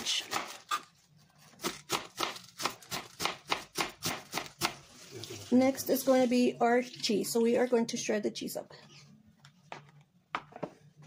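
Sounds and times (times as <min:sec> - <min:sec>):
knife chopping cabbage on cutting board: 0:01.6 - 0:04.8.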